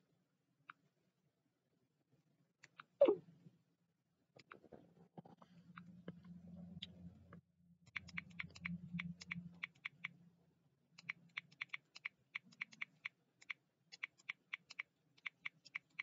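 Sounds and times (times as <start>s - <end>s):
faint low hum: 4.4s - 13.5s.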